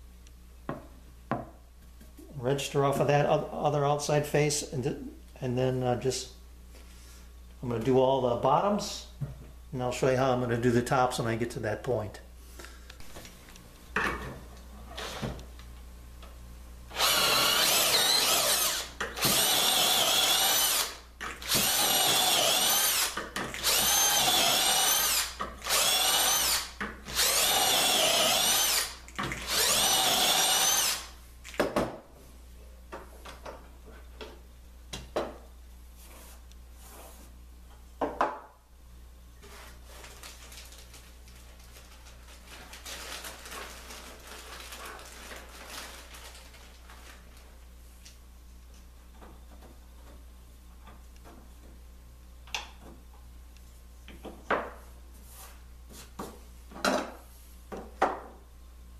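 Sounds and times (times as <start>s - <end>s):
cordless drill drilling into wood: 16.9s - 31.1s.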